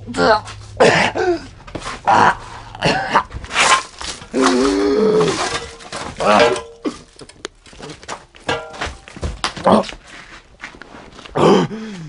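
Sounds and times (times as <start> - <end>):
person making wordless vocal sounds: 0.0 - 3.3, 4.3 - 5.5
person moaning: 0.0 - 3.3, 4.3 - 5.5, 11.4 - 12.0.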